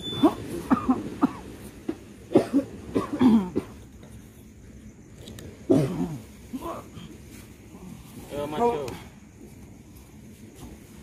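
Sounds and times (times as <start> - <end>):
man coughing: 2.3 - 3.8, 5.7 - 6.8.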